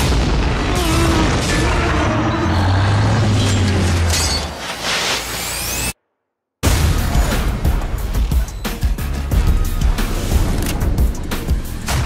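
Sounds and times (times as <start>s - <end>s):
explosion boom and roar: 0.0s - 4.1s, 6.6s - 8.3s.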